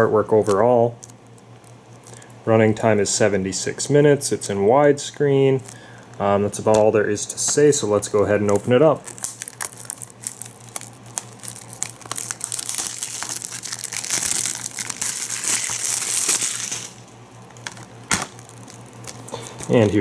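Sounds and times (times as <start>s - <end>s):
plastic shrink-wrap crinkling: 0.3s - 2.3s, 5.5s - 6.0s, 8.1s - 20.0s.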